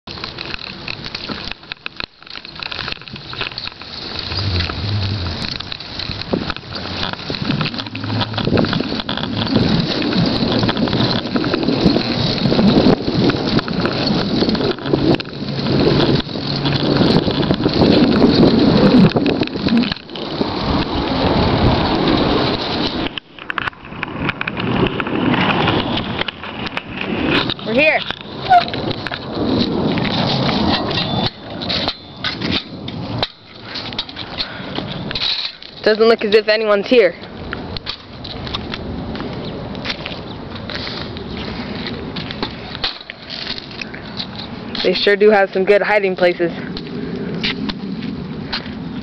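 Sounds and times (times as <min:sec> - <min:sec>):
wind buffeting microphone: 0:03.0 - 0:49.0.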